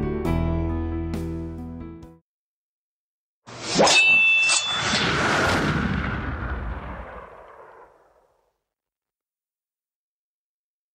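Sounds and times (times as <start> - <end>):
rising whoosh: 3.5 - 8.1
metallic clang with ringing ding: 3.8 - 4.9.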